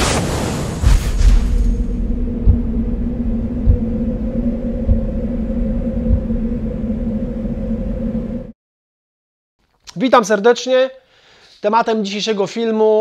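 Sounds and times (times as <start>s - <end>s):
deep rumbling drone: 0.8s - 8.6s
two-pitch hum: 1.8s - 8.6s.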